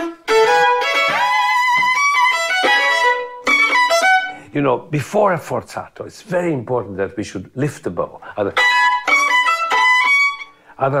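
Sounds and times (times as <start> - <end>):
violins playing held notes: 0.0 - 4.4, 8.4 - 10.5.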